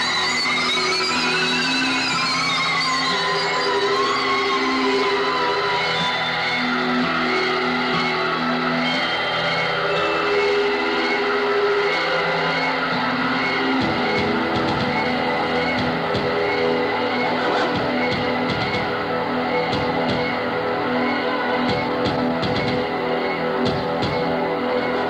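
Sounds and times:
held keyboard notes: 0:01.3 - 0:25.0.

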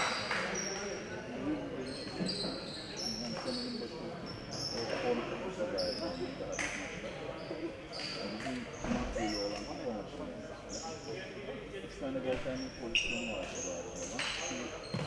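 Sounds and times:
indistinct chatter: 0:00.0 - 0:15.0
shoes squeaking on hardwood: 0:13.0 - 0:15.0.

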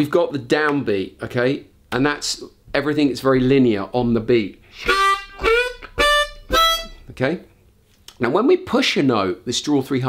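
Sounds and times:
harmonica notes: 0:04.6 - 0:07.2.

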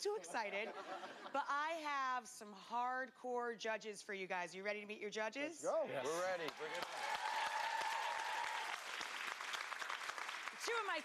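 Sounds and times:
studio audience applauding: 0:06.2 - 0:11.0
long held cheer: 0:06.6 - 0:09.1.

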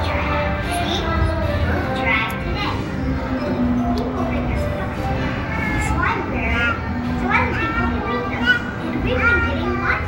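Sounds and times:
background music: 0:00.0 - 0:10.0
children's voices chattering: 0:00.0 - 0:10.0.

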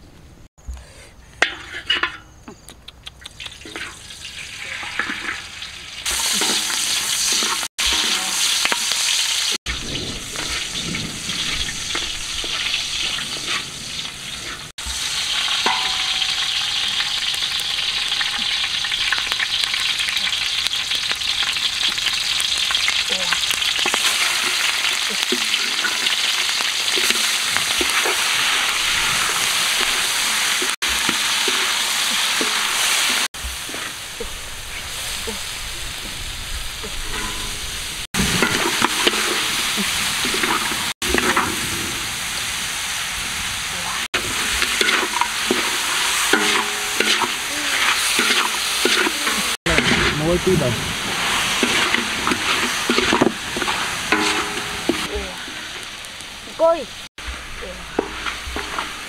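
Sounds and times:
hot oil sizzling in a wok: 0:03.5 - 0:59.0
wooden spatula stirring: 0:51.6 - 0:55.1.

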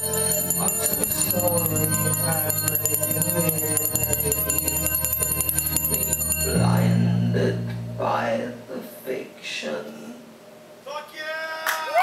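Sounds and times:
bell-like chiming: 0:00.0 - 0:07.5
held low note: 0:00.0 - 0:08.8.

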